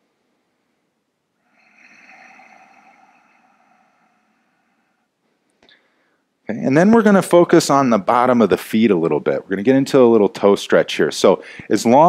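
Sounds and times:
person breathing slowly whispering: 1.4s - 6.2s.

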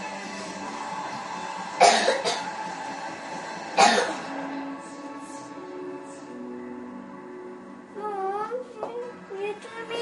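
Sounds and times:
background music: 0.0s - 10.0s
person coughing: 1.8s - 2.4s, 3.8s - 4.3s.

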